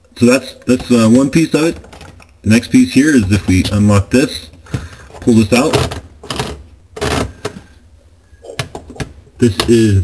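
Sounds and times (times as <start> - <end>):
plastic filter scraping: 4.6 - 7.8.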